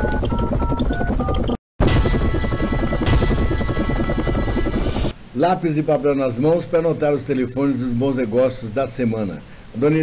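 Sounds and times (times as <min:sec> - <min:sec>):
helicopter rotor chopping: 0:00.0 - 0:05.2.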